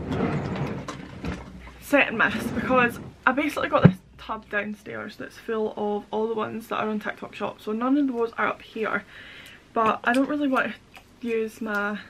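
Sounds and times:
plastic cases clattering: 0.0s - 4.0s.

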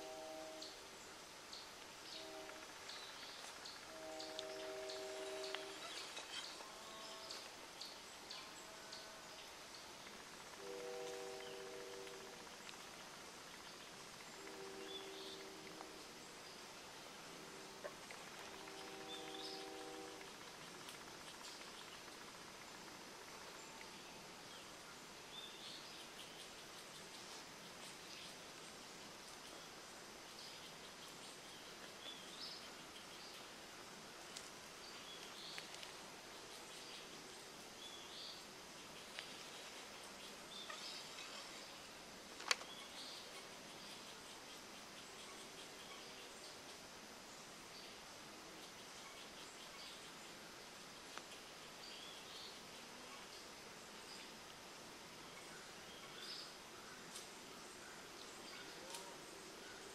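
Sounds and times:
insects droning: 0.0s - 59.9s.

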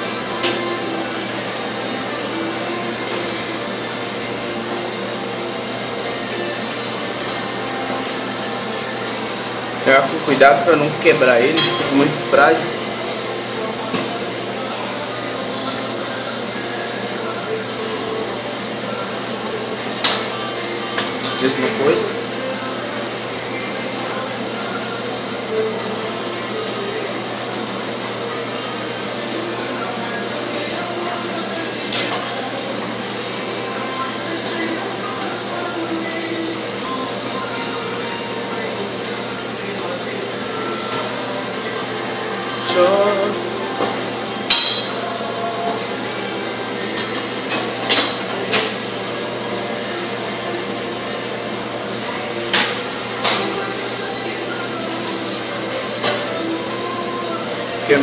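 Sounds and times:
steady background hum: 0.0s - 58.0s.

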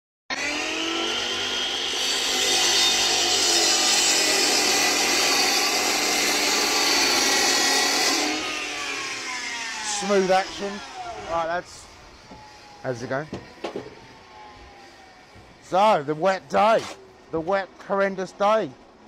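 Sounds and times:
chop saw cutting brick: 0.3s - 11.0s.

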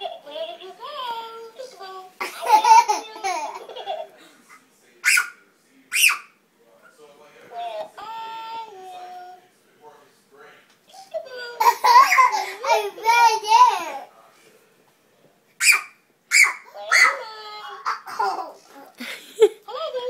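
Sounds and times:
toddlers laughing and squealing: 11.1s - 14.1s, 15.6s - 20.0s.

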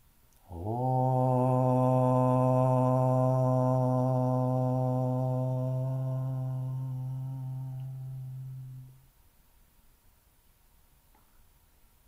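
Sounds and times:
man chanting om: 0.4s - 9.0s.

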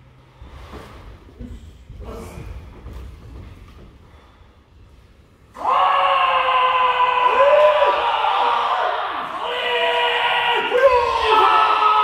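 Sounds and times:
people shouting long shouts: 5.5s - 12.0s.

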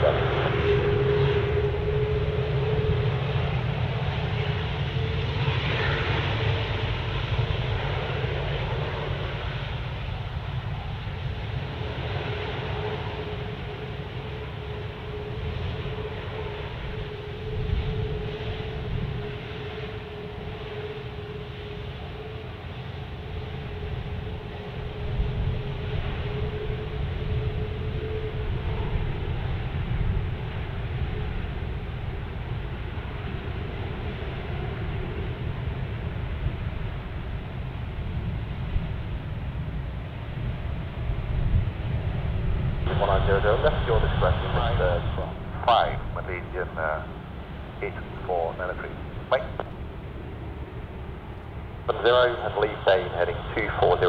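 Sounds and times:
jet engines whining while taxiing: 0.0s - 54.0s.

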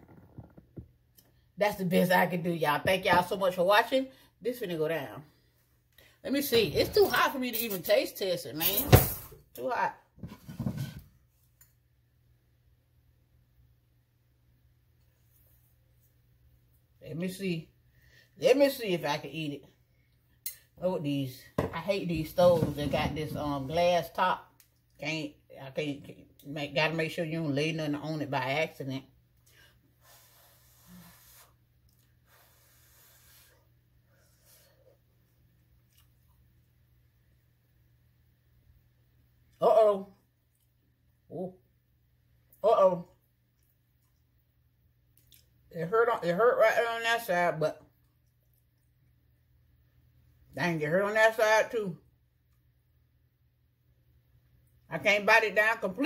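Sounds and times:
low room hum: 0.0s - 56.0s
faint breaths: 32.2s - 35.0s.

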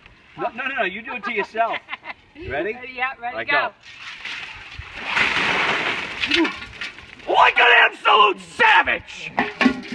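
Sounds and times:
ice water splashing onto wooden deck: 3.8s - 7.3s.

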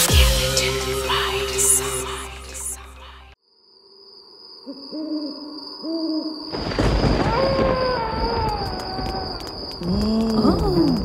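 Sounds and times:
music: 0.0s - 3.4s
owl hooting: 4.6s - 6.5s.

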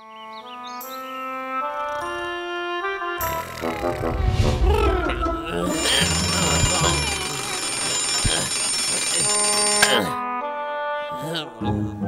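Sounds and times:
alarm clock ringing: 5.7s - 10.2s.

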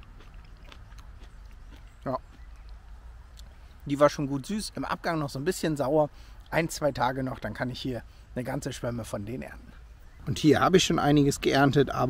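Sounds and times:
wet mouth clicks of chewing: 0.0s - 3.6s
low steady rumble: 0.0s - 12.0s.

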